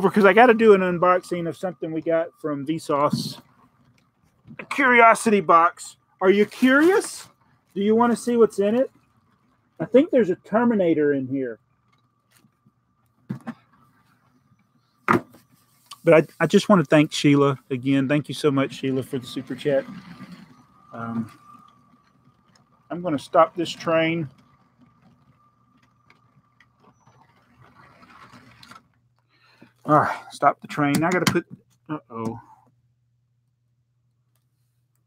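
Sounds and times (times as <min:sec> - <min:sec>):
faint high hum: 0:00.0 - 0:03.6
rattle of gears and wheels: 0:00.0 - 0:32.7
toy train motor whine: 0:16.0 - 0:28.8.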